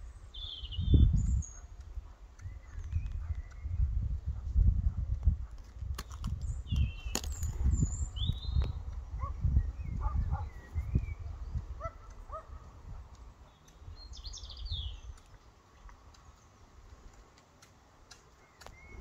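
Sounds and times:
songbirds chirping: 0.0 - 4.6, 5.4 - 19.0.

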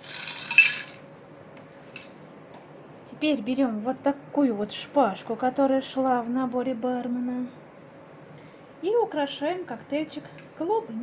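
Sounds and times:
cocktail shaker rattling: 0.0 - 1.0.

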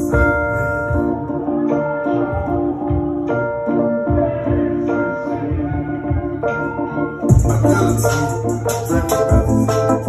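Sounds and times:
digital piano playing: 0.0 - 10.0.

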